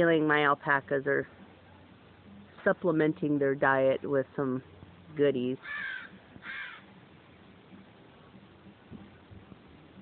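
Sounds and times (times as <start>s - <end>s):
faint outdoor background: 0.0s - 10.0s
crow cawing: 5.6s - 6.9s.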